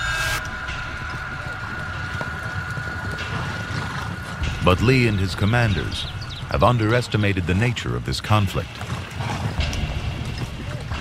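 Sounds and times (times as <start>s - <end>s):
horse hooves clip-clopping: 0.4s - 11.0s.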